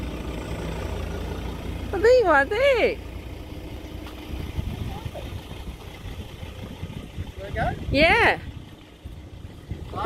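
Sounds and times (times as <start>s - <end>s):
vehicle engine idling: 0.0s - 10.0s
wind buffeting microphone: 3.6s - 10.0s.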